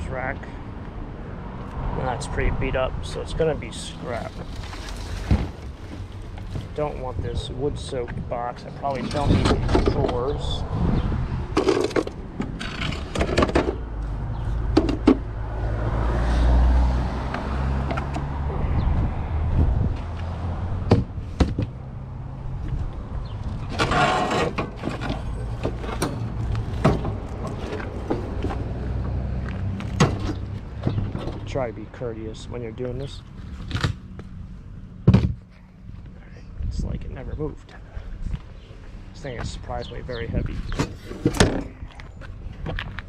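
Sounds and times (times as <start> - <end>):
wooden parts knocking and clattering: 11.6 - 13.8, 14.7 - 15.2
steady low rumble: 18.3 - 23.7.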